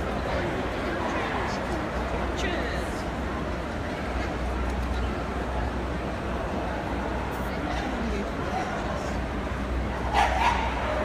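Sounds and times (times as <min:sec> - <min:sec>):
hum of busy hall: 0:00.0 - 0:11.0
dog barking: 0:10.1 - 0:11.0.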